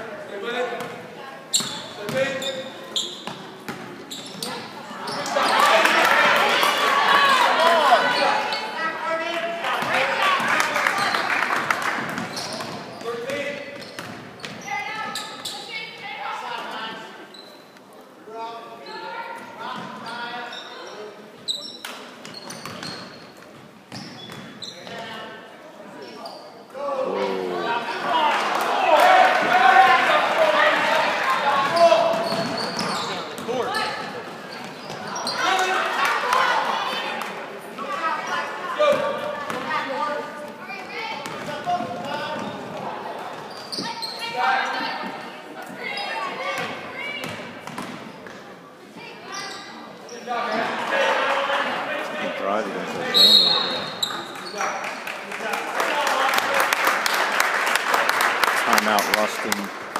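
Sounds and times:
spectators' voices echoing: 0:00.0 - 0:13.8, 0:26.8 - 0:48.8, 0:49.8 - 0:59.9
crowd shouting: 0:05.4 - 0:08.7, 0:27.0 - 0:31.8.

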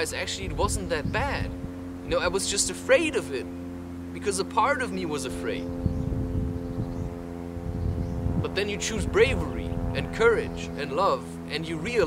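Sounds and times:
wind rumble on microphone: 0:00.0 - 0:03.2, 0:04.8 - 0:12.0
steady low hum: 0:00.0 - 0:12.0.

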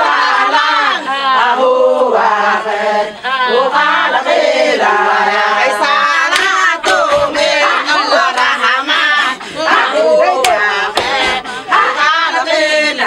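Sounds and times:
women singing together: 0:00.0 - 0:13.0
hand claps: 0:06.2 - 0:07.4, 0:08.2 - 0:09.2, 0:10.3 - 0:11.4.

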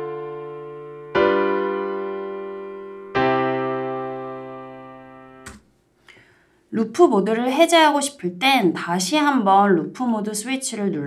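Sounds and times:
piano chord: 0:00.0 - 0:05.5.

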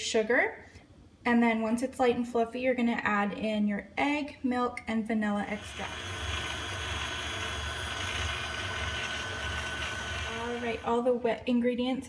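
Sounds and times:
stand mixer motor humming: 0:05.5 - 0:11.0.

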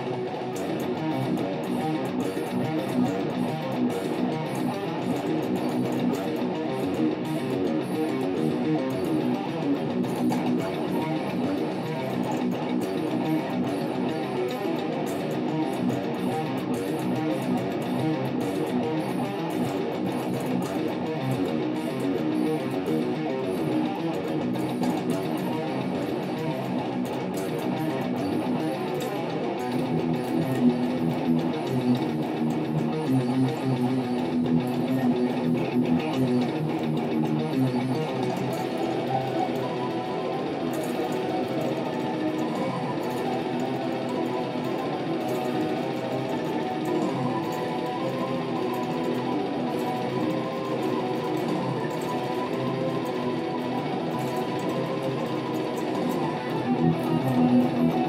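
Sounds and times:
death metal backing track: 0:00.0 - 0:58.0
electric guitar metal riffing: 0:00.0 - 0:58.0.

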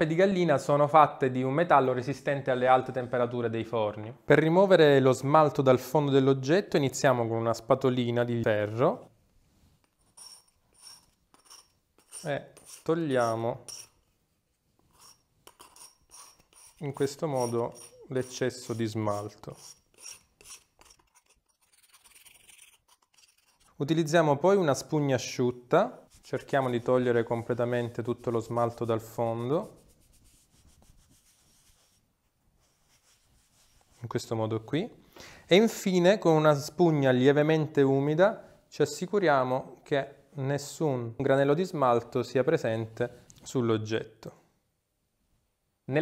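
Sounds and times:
metal spatula scraping ceramic: 0:09.8 - 0:14.0, 0:14.8 - 0:23.8.

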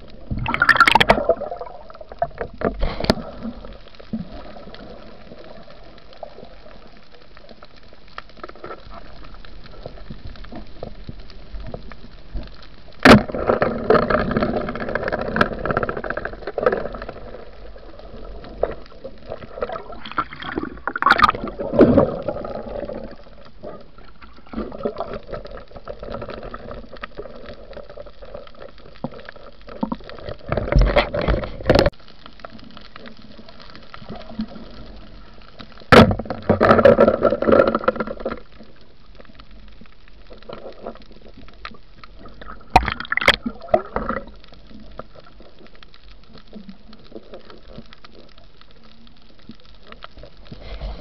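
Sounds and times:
steady water wash: 0:00.0 - 0:32.0
underwater bubbling and gurgling: 0:00.0 - 0:51.0.

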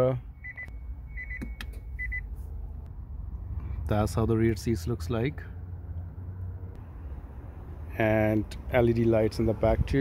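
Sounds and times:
electronic cabin chime beeps: 0:00.3 - 0:02.3.

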